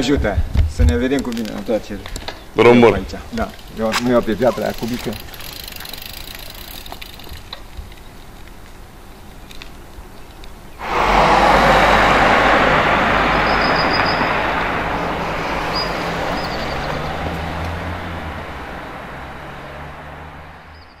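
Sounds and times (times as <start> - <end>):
tyre and road noise: 0.0 - 21.0
vehicle engine hum: 10.8 - 21.0.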